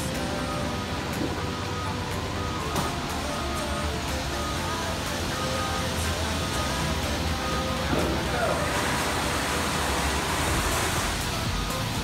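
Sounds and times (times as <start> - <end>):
steady ambient roar: 0.0 - 12.0.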